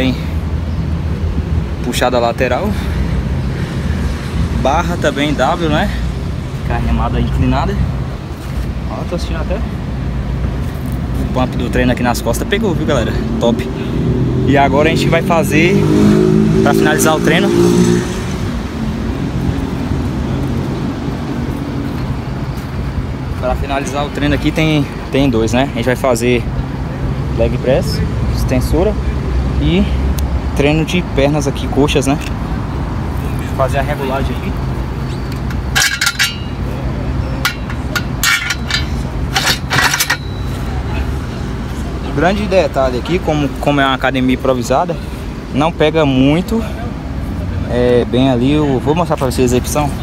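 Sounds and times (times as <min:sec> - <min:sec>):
traffic noise: 0:00.0 - 0:50.0
metal knocks and clinks: 0:35.4 - 0:36.7, 0:37.4 - 0:40.5.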